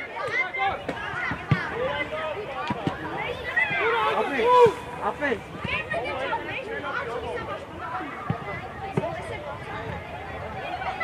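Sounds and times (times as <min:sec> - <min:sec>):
children shouting: 0:00.0 - 0:08.3.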